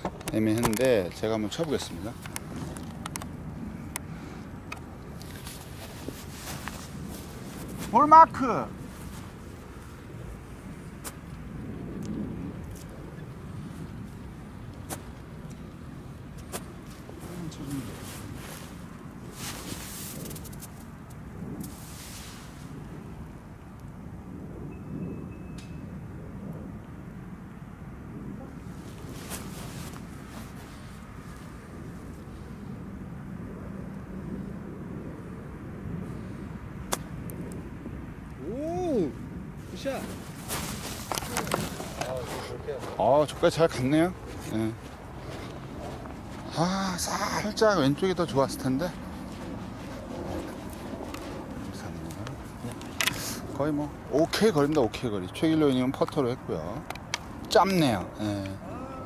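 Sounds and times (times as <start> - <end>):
soft rustles: 5.2 - 8.0, 16.4 - 20.9, 21.6 - 22.8, 28.7 - 32.1, 39.6 - 46.6, 48.6 - 53.6.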